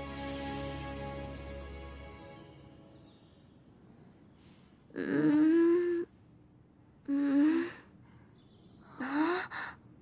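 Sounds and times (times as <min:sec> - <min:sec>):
woman moaning drowsily: 0:04.9 - 0:06.1, 0:07.0 - 0:07.9.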